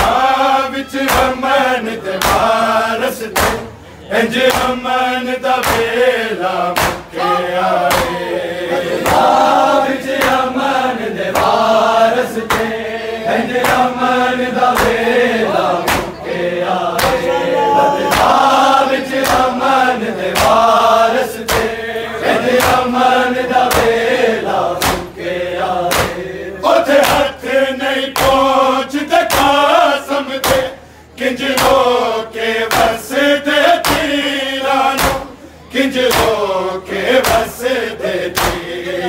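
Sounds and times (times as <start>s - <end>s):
men chanting in chorus: 0.0s - 39.0s
chest-beating slaps: 3.4s - 3.7s, 5.6s - 5.9s, 6.8s - 7.1s, 7.9s - 8.2s, 12.5s - 12.8s, 13.6s - 13.9s, 14.7s - 15.0s, 15.8s - 16.2s, 17.0s - 19.6s, 20.3s - 20.6s, 21.4s - 21.8s, 23.7s - 24.0s, 24.8s - 25.2s, 25.9s - 26.2s, 32.7s - 33.0s, 33.8s - 34.1s, 35.0s - 35.3s, 36.1s - 36.4s, 37.2s - 37.5s, 38.4s - 38.7s.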